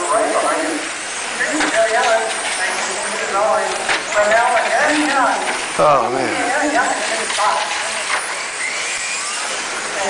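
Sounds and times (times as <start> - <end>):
steady background hiss: 0.0 - 10.0
voices talking: 0.0 - 10.0.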